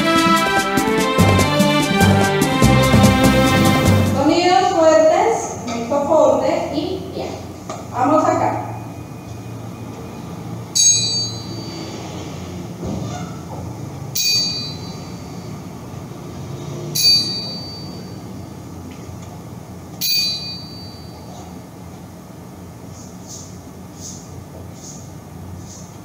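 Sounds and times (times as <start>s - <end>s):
small metal bell ding: 10.8s - 12.0s, 14.2s - 15.4s, 17.0s - 18.2s, 20.0s - 21.4s.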